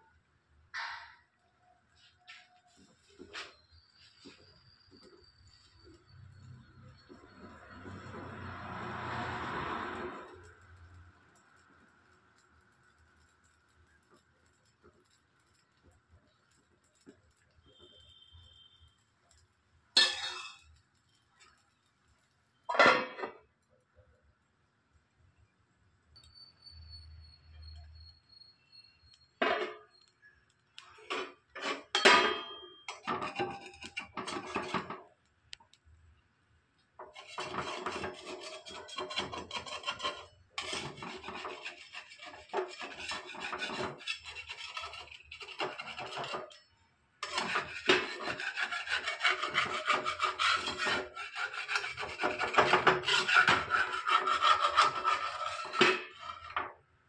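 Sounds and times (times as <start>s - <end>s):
spatula scraping a clay pan: 30.9s - 35.0s, 37.0s - 46.6s, 47.2s - 56.8s.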